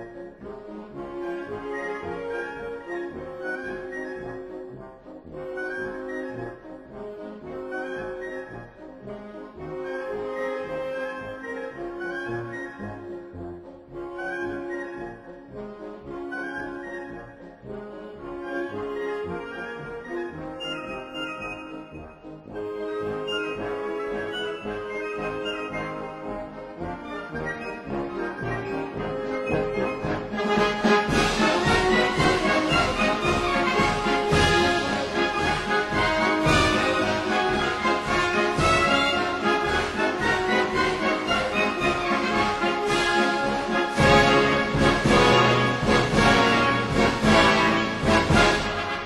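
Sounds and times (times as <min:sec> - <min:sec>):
military band playing a march: 0:17.7 - 0:49.0.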